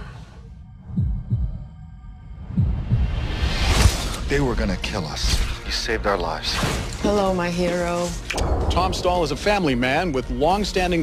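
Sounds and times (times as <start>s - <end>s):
low heartbeat thump: 0.8s - 1.8s, 2.4s - 4.0s.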